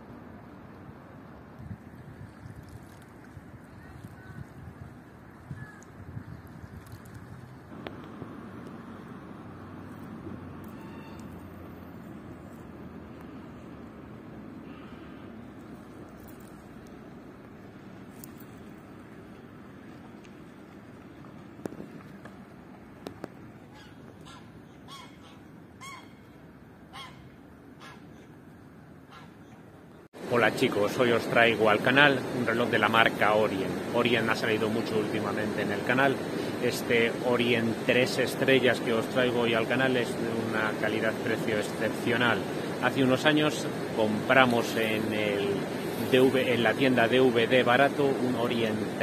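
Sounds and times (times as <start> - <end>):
wind buffeting microphone: 1.5 - 9.0
outdoor hiss: 7.0 - 23.6, 30.0 - 49.0.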